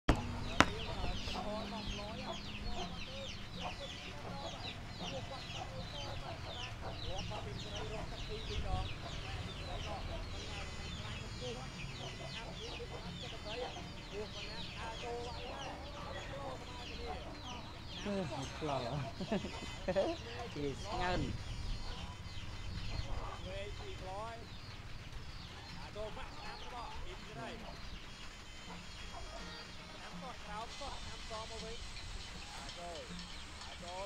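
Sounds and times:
chickens clucking and peeping: 0.1 - 34.0.

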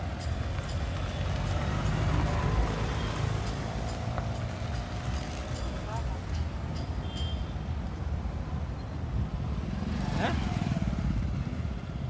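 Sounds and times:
motorcycles and cars passing: 0.0 - 6.6, 8.1 - 12.0.

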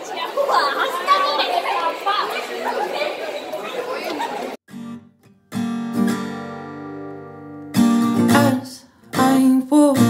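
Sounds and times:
young people chattering: 0.0 - 4.6.

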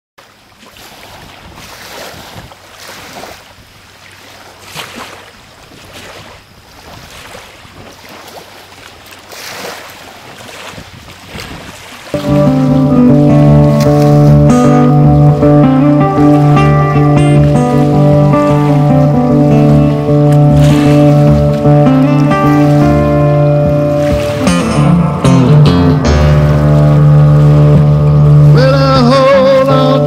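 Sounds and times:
acoustic guitar and fiddle playing: 12.2 - 30.0.

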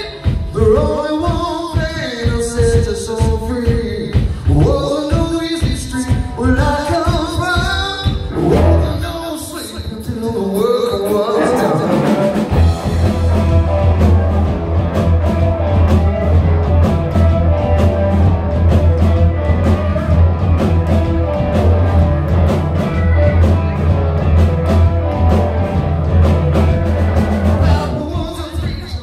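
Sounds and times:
live rock band playing: 0.0 - 29.0.

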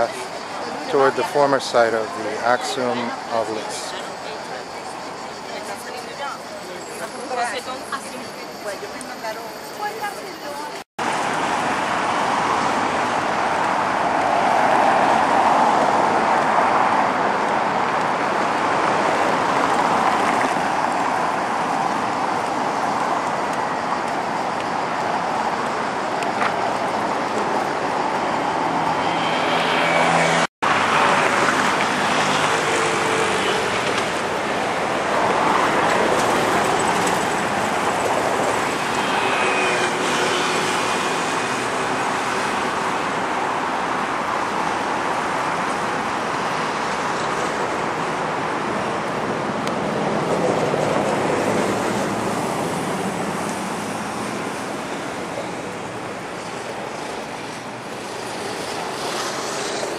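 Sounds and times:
road traffic passing: 0.0 - 59.9.

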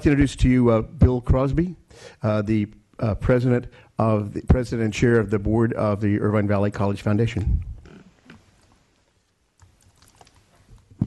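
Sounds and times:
microphone handling clicks and taps: 7.4 - 8.8.

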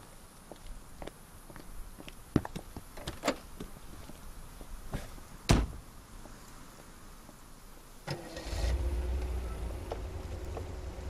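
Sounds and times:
car engine starting and running: 8.0 - 11.0.

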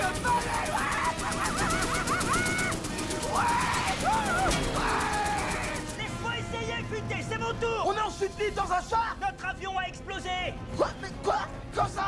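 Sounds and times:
rapid even rattle of clicks: 0.0 - 6.2
men yelling and whooping: 0.0 - 6.8
film music: 0.0 - 12.0.

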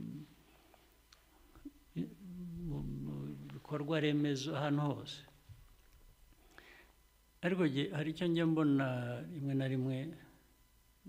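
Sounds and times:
man speaking: 1.9 - 5.3, 7.4 - 10.3
man's drawn-out hesitation sound: 2.0 - 4.2.

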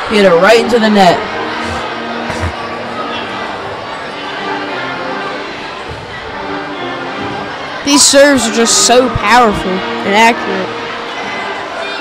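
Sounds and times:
crowd chatter: 0.0 - 12.0
music playing: 0.2 - 7.8, 9.3 - 11.5.

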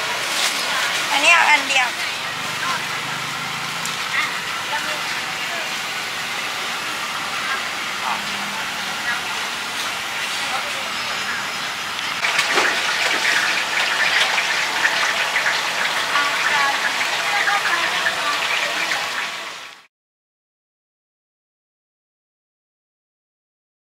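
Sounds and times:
hiss of background noise: 0.0 - 19.9
indistinct voices: 0.8 - 19.2.

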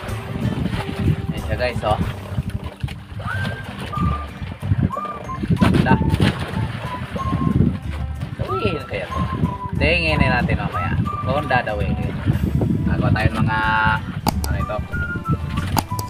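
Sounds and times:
background music: 0.0 - 16.0
wind and boat rumble: 0.0 - 16.0
man's voice: 1.3 - 2.1, 9.8 - 12.2, 12.8 - 15.0.

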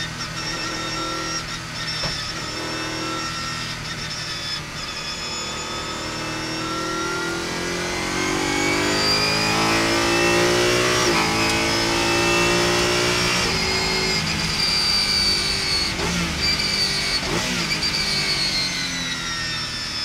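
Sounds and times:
car engine accelerating: 4.6 - 20.0.

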